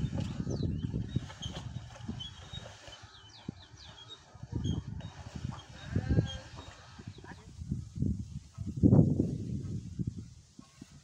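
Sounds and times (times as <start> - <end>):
birds chirping: 0.0 - 7.5
wind buffeting microphone: 0.0 - 11.0.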